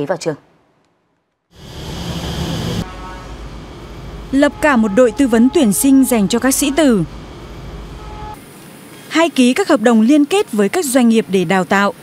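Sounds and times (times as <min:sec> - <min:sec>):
street traffic passing: 0:01.5 - 0:12.0.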